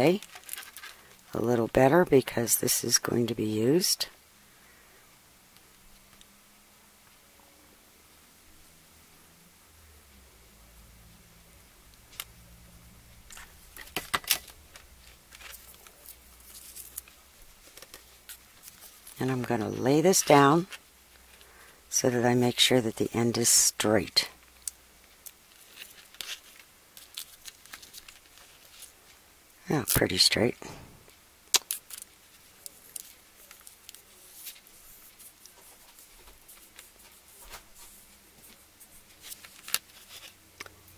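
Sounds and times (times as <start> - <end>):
tape rustling: 0.1 - 1.3, 13.2 - 29.2, 31.0 - 40.8
paper tape clicking: 31.5 - 32.1
hands rustling: 31.6 - 40.4.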